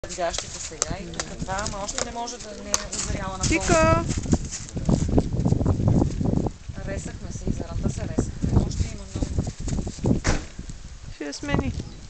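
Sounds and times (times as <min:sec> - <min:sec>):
footsteps crunching in wet snow: 0:00.0 - 0:06.4.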